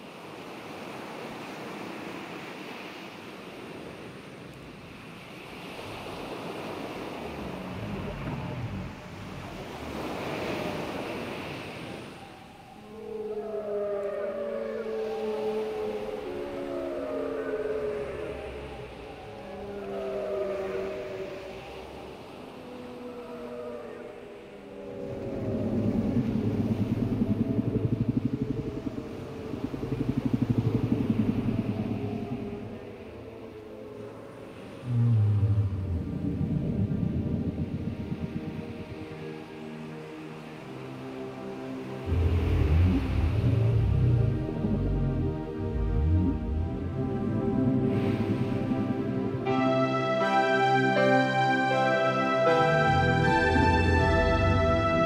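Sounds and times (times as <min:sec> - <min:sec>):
surf washing: 0:00.0 - 0:55.0
whale calls: 0:04.4 - 0:39.8, 0:41.9 - 0:55.0
deep rising tone: 0:24.8 - 0:33.0, 0:34.8 - 0:39.0, 0:42.1 - 0:49.6, 0:50.2 - 0:55.0
low buzzing pulsed rumbles: 0:25.3 - 0:33.0, 0:34.8 - 0:38.8, 0:42.1 - 0:49.4, 0:52.4 - 0:55.0.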